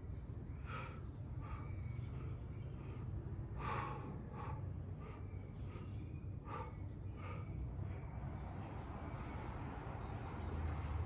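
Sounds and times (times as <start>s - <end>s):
steady low hum: 0.0s - 11.0s
man breathing hard: 0.5s - 8.3s.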